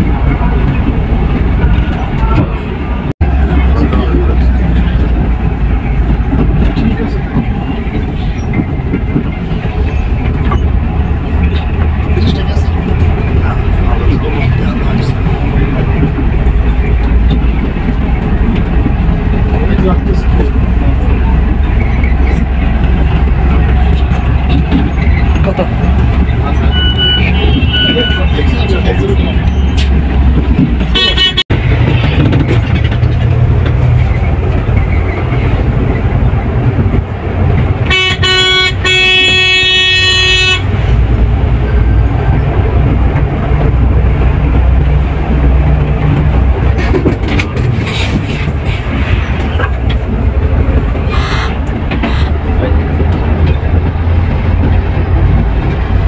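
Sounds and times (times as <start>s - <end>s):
coach engine rumble: 0.0s - 56.0s
road noise: 0.0s - 56.0s
horn toots: 37.8s - 40.7s, 51.0s - 52.5s.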